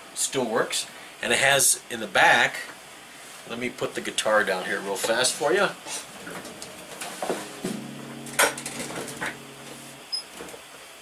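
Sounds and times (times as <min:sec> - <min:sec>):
guitar strings ringing chord: 0:06.2 - 0:10.1
guitar wood knocks: 0:06.3 - 0:09.5.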